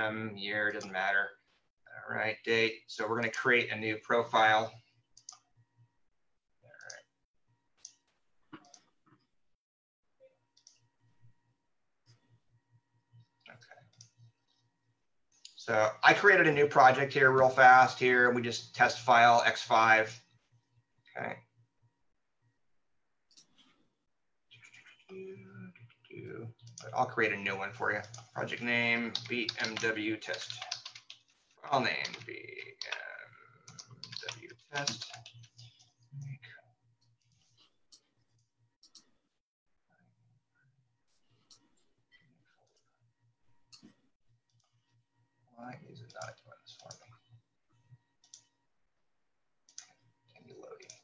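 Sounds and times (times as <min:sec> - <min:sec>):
computer mouse clicks: 0:05.2 - 0:05.5, 0:10.5 - 0:10.9, 0:23.3 - 0:23.6, 0:26.6 - 0:27.1, 0:27.9 - 0:31.3, 0:31.9 - 0:35.9, 0:37.0 - 0:39.1, 0:46.0 - 0:47.3, 0:48.2 - 0:48.5, 0:49.6 - 0:51.0
man making wordless voice sounds: 0:26.1 - 0:30.9, 0:31.6 - 0:35.2.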